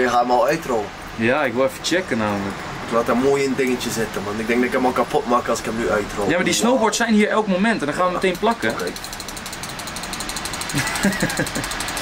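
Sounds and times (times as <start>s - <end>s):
motor running with fast pulse: 8.6s - 12.0s
people laughing: 10.7s - 12.0s.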